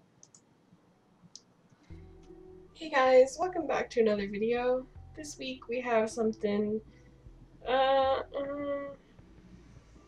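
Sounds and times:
faint sharp clicks: 0.2 - 0.5
low music: 1.9 - 10.0.

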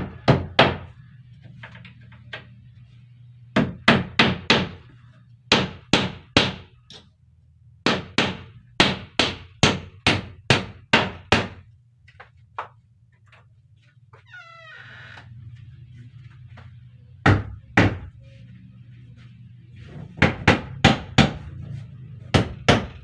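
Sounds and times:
hammer striking nails into wood: 5.5 - 7.0, 7.8 - 11.6, 22.3 - 23.0.

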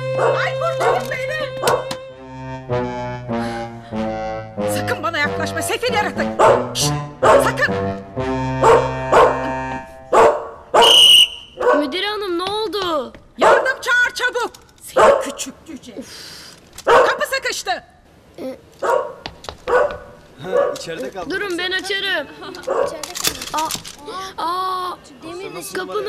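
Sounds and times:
light comic music: 0.0 - 10.3
small dog yapping: 18.8 - 20.8.

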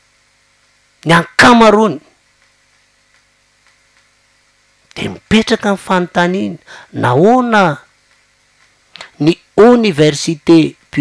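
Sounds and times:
low steady hum: 0.0 - 11.0
person speaking: 1.0 - 2.2, 4.9 - 8.1, 8.9 - 11.0
soft ticks: 2.3 - 4.2, 8.0 - 9.1.

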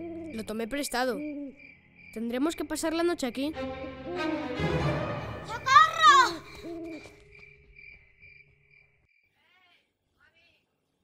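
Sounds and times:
crickets chirping: 0.0 - 3.5, 5.6 - 9.5.

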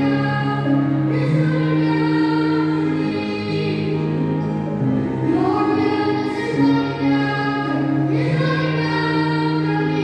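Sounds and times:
low musical accompaniment: 0.0 - 10.0
girl and boy singing: 5.3 - 10.0.

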